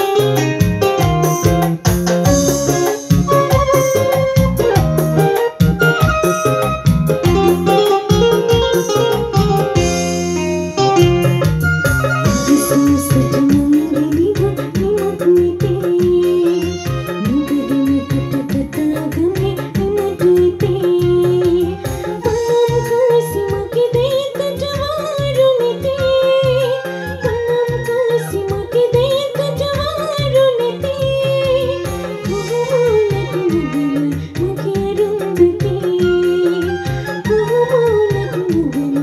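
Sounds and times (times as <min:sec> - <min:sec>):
electronic keyboard melody with backing: 0:00.0 - 0:39.0
woman singing into microphone: 0:12.2 - 0:39.0.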